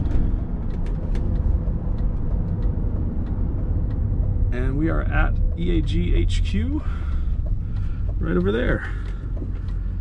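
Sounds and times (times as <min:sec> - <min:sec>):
car engine at steady revs: 0:00.0 - 0:10.0
road and tyre rumble: 0:00.0 - 0:10.0.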